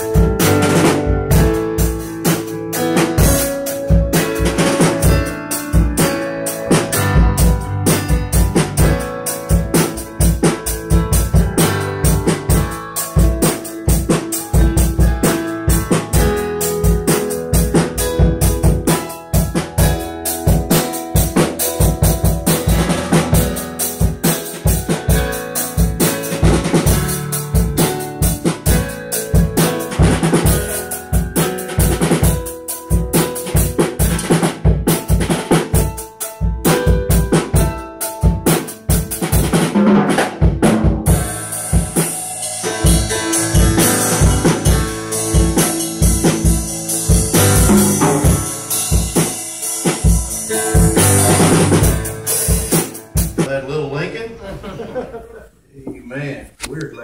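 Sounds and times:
drum kit playing fast beat: 0.0s - 53.6s.

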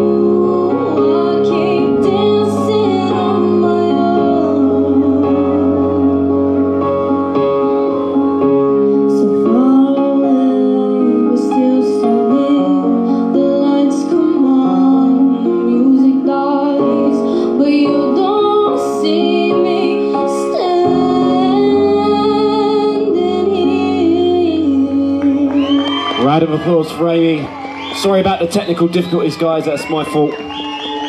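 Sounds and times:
woman singing through a pa: 0.0s - 6.2s, 9.2s - 26.0s
instrumental backing music: 0.0s - 31.0s.

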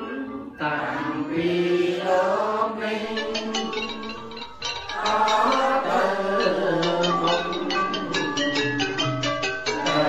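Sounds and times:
group chanting in unison: 0.0s - 4.3s, 4.9s - 8.6s, 9.7s - 10.0s.

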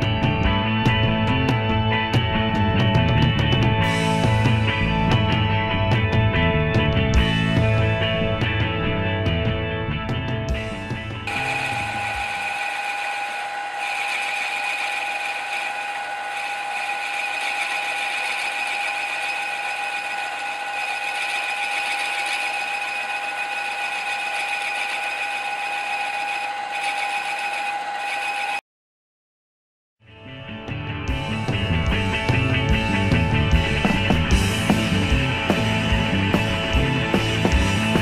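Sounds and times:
milling machine whining: 10.6s - 28.6s, 31.2s - 38.0s.

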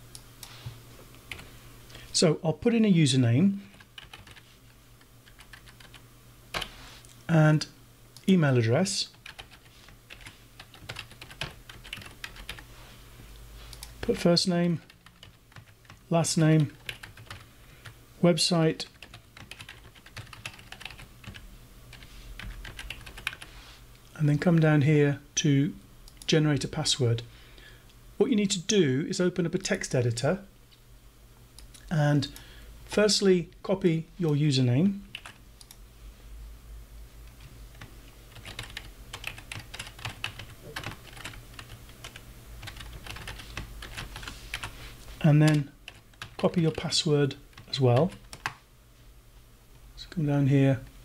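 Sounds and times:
faint low hum: 0.0s - 51.0s
typing on computer keyboard: 3.7s - 4.4s, 5.3s - 6.0s, 9.2s - 12.6s, 16.6s - 17.4s, 18.9s - 23.5s, 37.7s - 44.7s, 47.5s - 48.6s.

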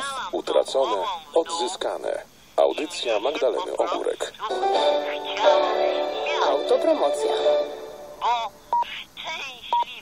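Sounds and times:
telephone-quality voices: 0.0s - 10.0s.

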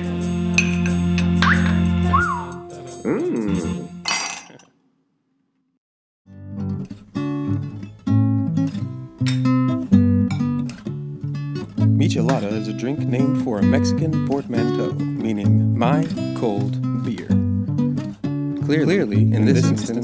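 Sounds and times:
plucked guitar music: 0.0s - 3.6s, 6.3s - 20.0s.

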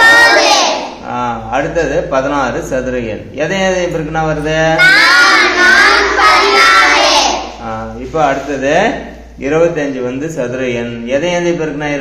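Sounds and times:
children chanting: 0.0s - 1.0s, 4.8s - 7.6s.

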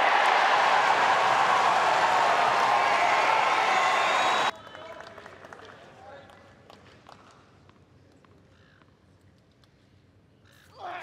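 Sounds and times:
crowd murmur: 0.0s - 4.5s
crowd noise swell: 0.0s - 4.5s
loud falling call: 0.0s - 4.5s.

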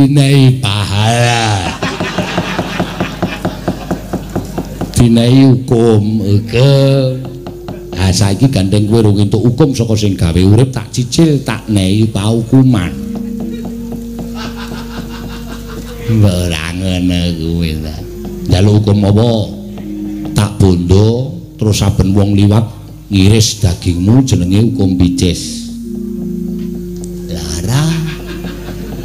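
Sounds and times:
gamelan holding steady note: 0.6s - 29.0s
low steady hum: 1.0s - 29.0s
rapid wooden knocking: 1.9s - 5.0s.

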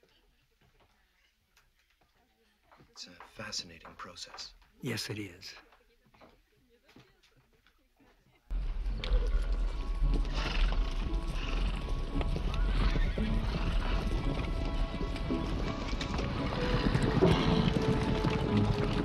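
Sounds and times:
hooves pounding over dirt: 8.5s - 19.0s
music: 8.5s - 19.0s
horses whinnying: 8.8s - 19.0s.

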